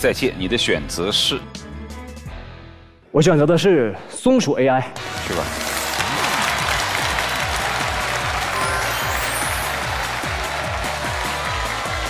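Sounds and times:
background music with bass notes: 0.0 - 2.9
audience applauding: 5.0 - 12.0.

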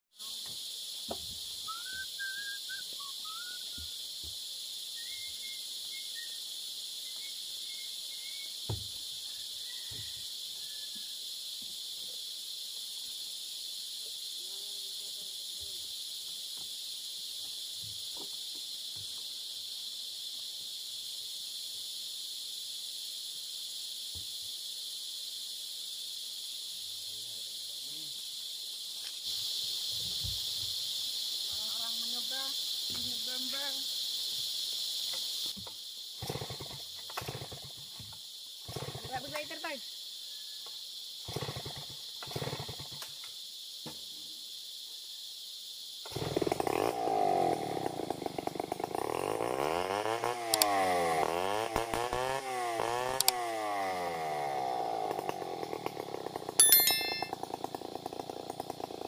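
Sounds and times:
high-pitched insect chorus: 0.1 - 59.0.

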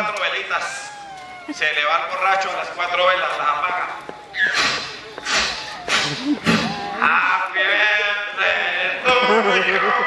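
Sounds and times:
breath puffs into microphone: 4.4 - 6.8
man grunting: 5.9 - 7.2.

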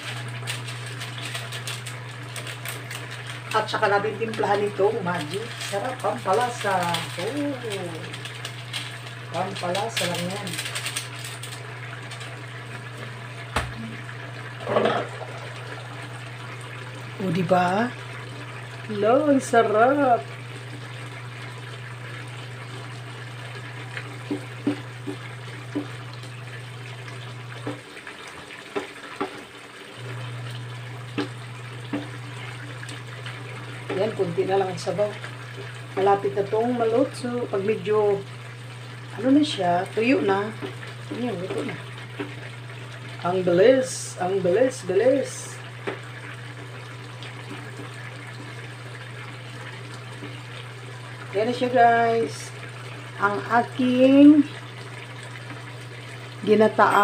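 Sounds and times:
sauce simmering and bubbling: 45.7 - 51.3.

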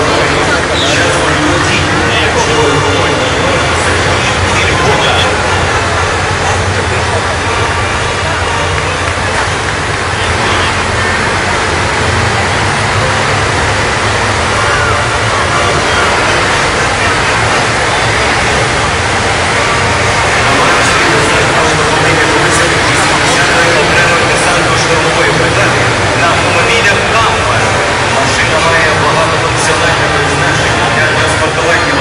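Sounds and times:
crowd chatter: 0.0 - 32.0
tracked vehicle engines rumbling: 0.0 - 32.0.

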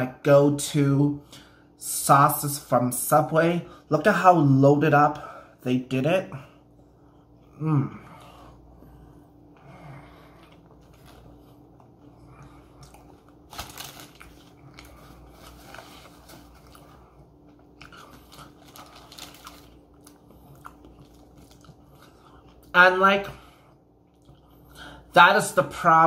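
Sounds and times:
low steady hum: 0.0 - 26.0
person chewing food: 6.5 - 22.8, 23.4 - 25.1.

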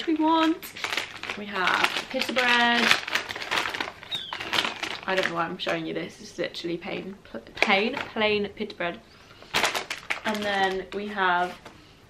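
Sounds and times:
paper bag rustling: 0.0 - 5.4, 9.4 - 11.8.

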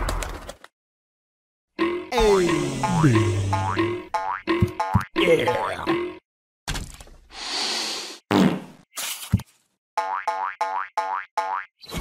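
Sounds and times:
cartoon spring boing: 1.8 - 5.8.

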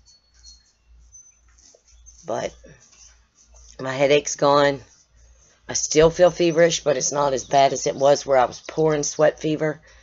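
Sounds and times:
faint high-pitched chirps: 0.0 - 10.0.

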